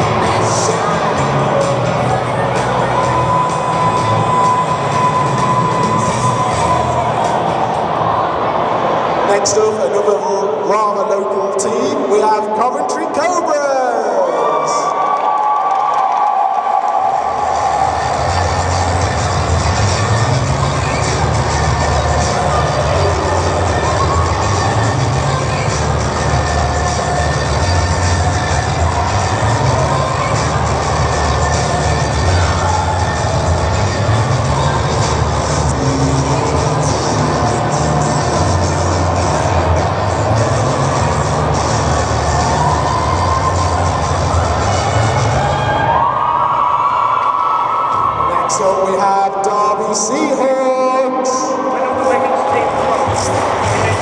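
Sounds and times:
music with strong bass beat: 0.0 - 7.9, 17.1 - 45.9, 52.4 - 54.0
crowd cheering and shouting: 0.0 - 54.0.

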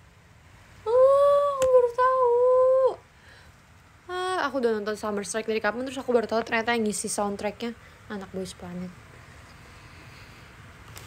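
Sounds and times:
woman humming: 0.8 - 3.0.

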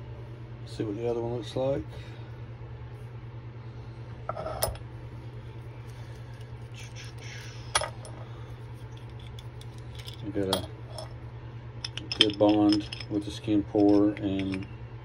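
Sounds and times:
steady low hum: 0.0 - 15.0
metal parts clinking: 9.0 - 11.2, 11.8 - 14.7.

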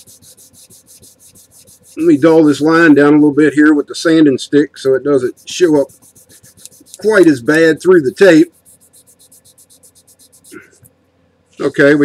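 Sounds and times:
sanding stick scratching on tape: 0.0 - 2.7, 5.1 - 10.9.

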